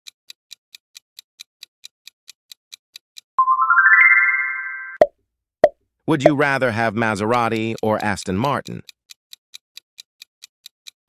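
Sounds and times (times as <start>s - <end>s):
synthesized chime: 3.4s - 5.1s.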